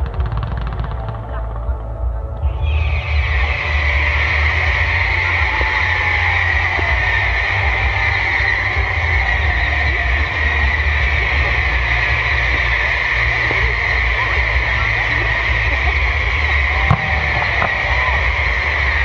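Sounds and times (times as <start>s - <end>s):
fireworks fountain hissing: 2.5s - 19.0s.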